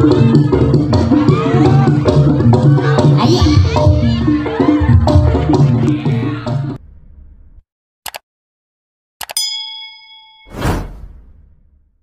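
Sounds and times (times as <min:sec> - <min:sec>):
bright bell ding: 0:09.4 - 0:10.6
whoosh: 0:10.5 - 0:12.0.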